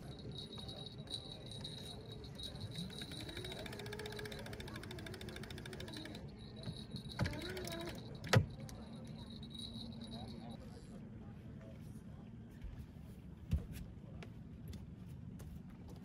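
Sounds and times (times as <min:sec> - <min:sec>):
ratchet clicking rapidly: 0:01.6 - 0:08.6.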